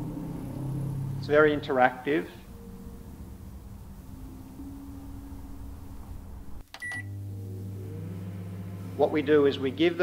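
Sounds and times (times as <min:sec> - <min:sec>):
deeper steady hum: 0:00.0 - 0:10.0
low steady hum: 0:00.0 - 0:10.0
short high beep: 0:06.8 - 0:07.2.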